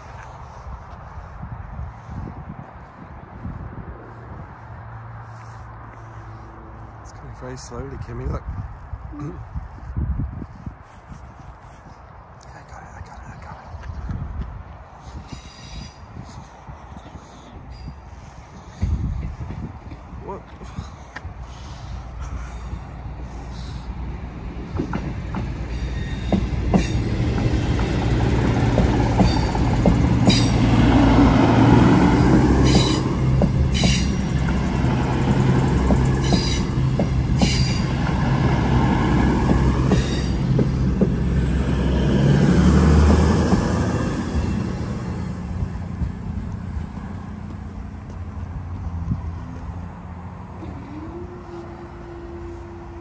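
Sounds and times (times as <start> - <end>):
train engine hum: 0.0 - 12.4, 13.0 - 53.0.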